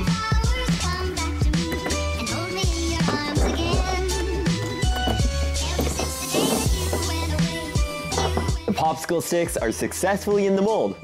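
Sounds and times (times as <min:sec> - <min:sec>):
background music with bass and drums: 0:00.0 - 0:11.0.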